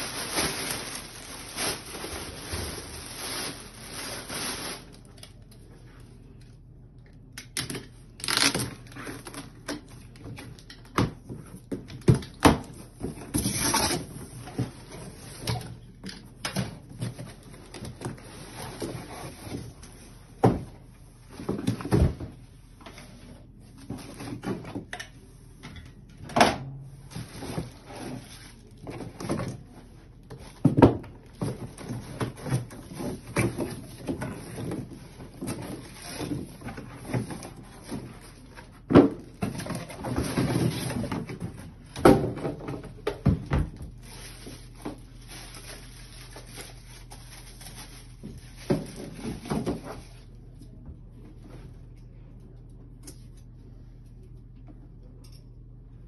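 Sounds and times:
plastic wrap rustling: 0.0s - 6.4s, 8.2s - 10.6s, 11.6s - 20.4s, 27.0s - 43.0s, 43.7s - 50.4s
low steady hum: 0.0s - 56.0s.

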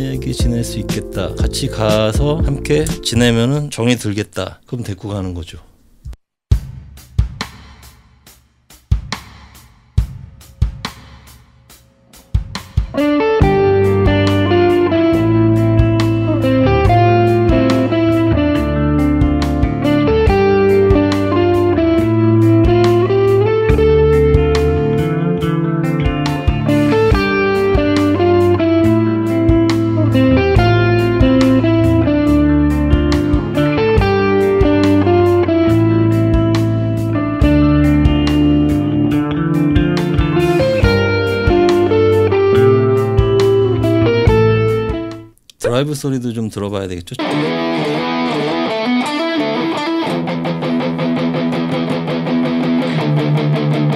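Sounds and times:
backing track with drums and bass: 0.0s - 3.4s, 5.9s - 45.7s
electric guitar through amplifier: 13.0s - 45.2s, 47.2s - 53.9s.

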